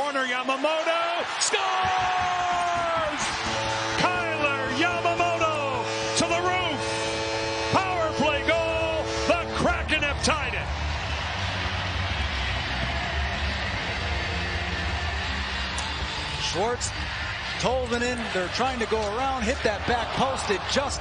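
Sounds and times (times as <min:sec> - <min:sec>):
crowd cheering and yelling: 0:00.0 - 0:21.0
arena goal horn: 0:02.6 - 0:11.5
arena music with deep bass: 0:02.8 - 0:21.0.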